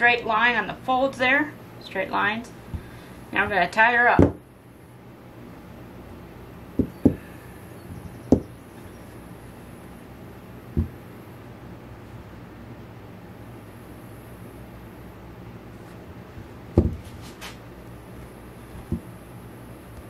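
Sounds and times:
spool knocking on tabletop: 16.8 - 17.0.

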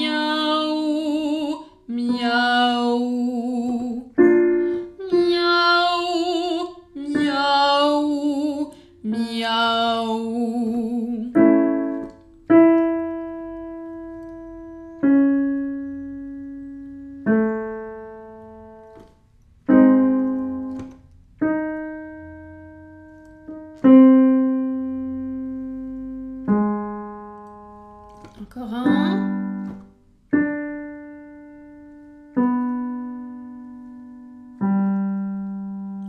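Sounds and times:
woman singing held vowel: 0.0 - 11.5, 28.4 - 29.4
piano chords: 0.0 - 36.0.

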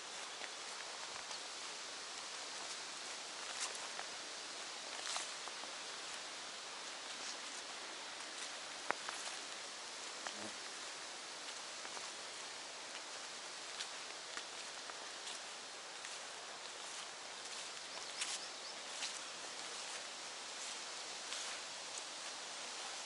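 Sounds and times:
faint rustles and ticks: 0.0 - 23.0
steady outdoor hiss: 0.0 - 23.0.

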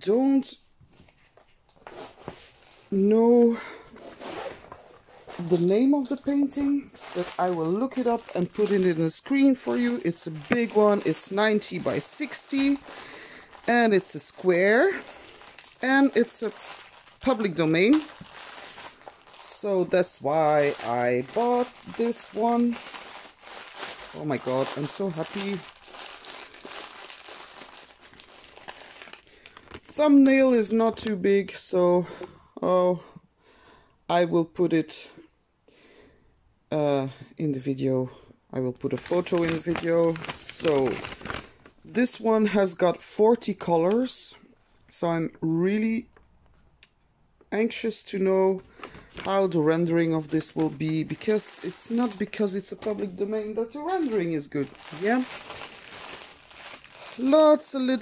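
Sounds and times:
packaging crinkling: 3.7 - 30.0, 38.8 - 42.2, 48.5 - 58.0.

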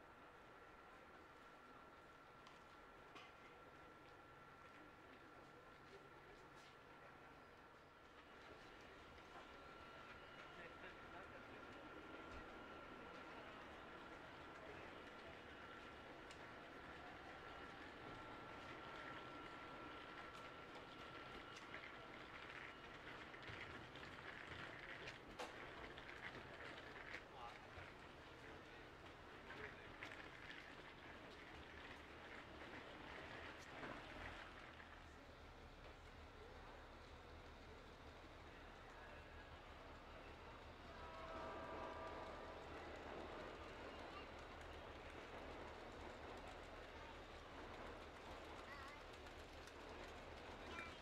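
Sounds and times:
train rumbling on viaduct: 8.1 - 51.0.

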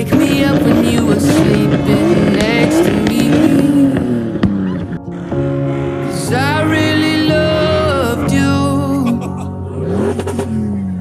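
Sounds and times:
background music: 0.0 - 11.0
car engine accelerating: 0.0 - 11.0.

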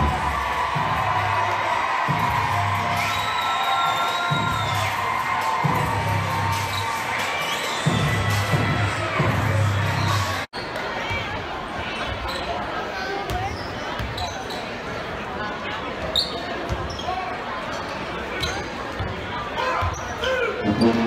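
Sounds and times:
crowd chatter in echoing gym: 0.0 - 21.0.

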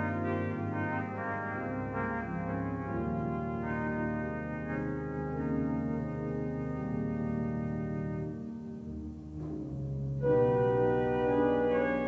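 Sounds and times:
deep organ pedal note: 0.0 - 12.0
pipe organ sustained chords: 0.0 - 12.0.

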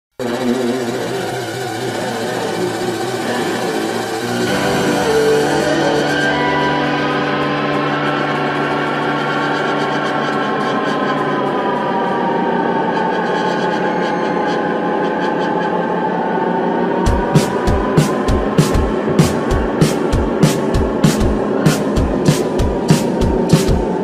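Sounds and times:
festival crowd noise: 0.2 - 24.0
sustained low drone: 0.2 - 24.0
electric guitar note bending down: 0.9 - 11.8.

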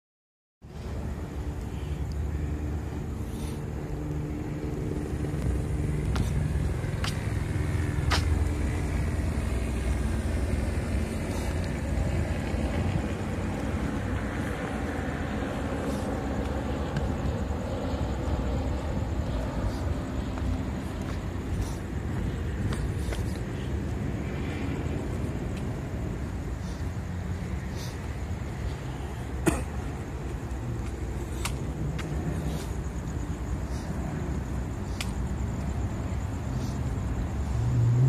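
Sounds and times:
car passing: 0.6 - 38.0
vehicle engine humming: 0.6 - 38.0.

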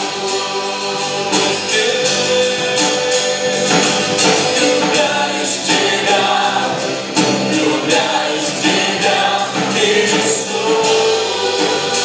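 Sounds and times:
men singing into microphones: 0.0 - 12.0
worship band playing: 0.0 - 12.0.

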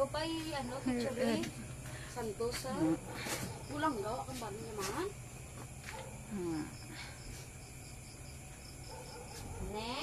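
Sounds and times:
insect chirping: 0.0 - 10.0.

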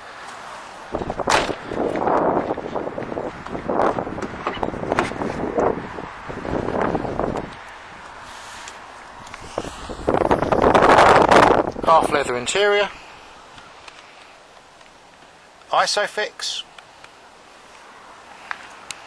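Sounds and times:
wind buffeting microphone: 0.9 - 8.4, 9.0 - 13.0.

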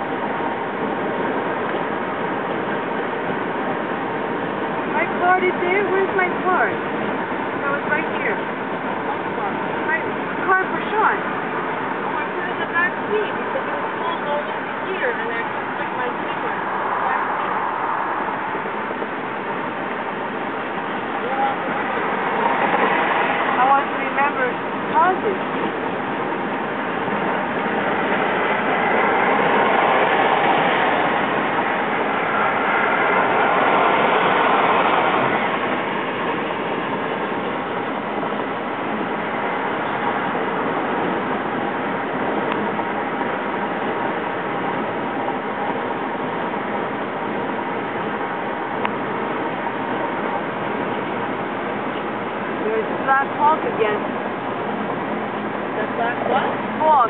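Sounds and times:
tyre and wind road noise: 0.0 - 57.0.

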